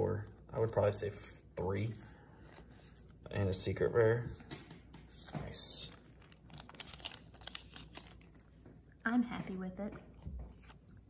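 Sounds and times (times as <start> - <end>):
foil wrappers crinkling: 5.8 - 8.6.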